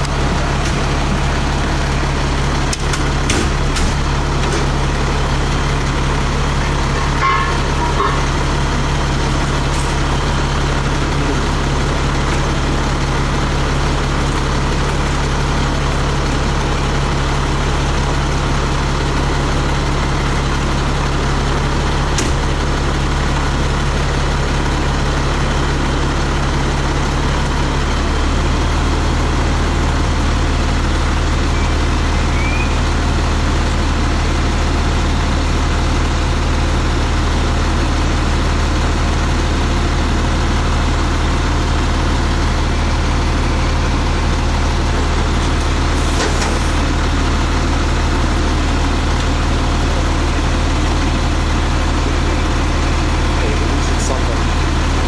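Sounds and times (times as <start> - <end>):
fire truck engine drone: 0.0 - 55.0.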